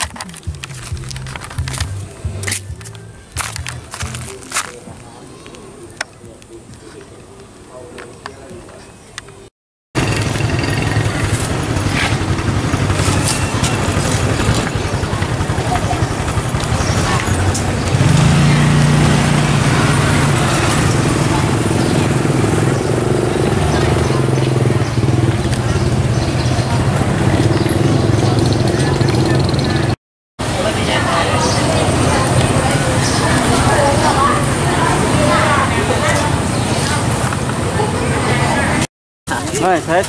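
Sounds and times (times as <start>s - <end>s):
motorcycle engine running: 0.0s - 4.7s, 10.0s - 30.0s.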